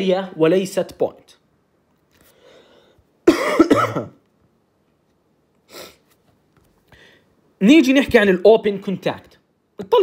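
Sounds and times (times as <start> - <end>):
person coughing: 3.2 - 4.2.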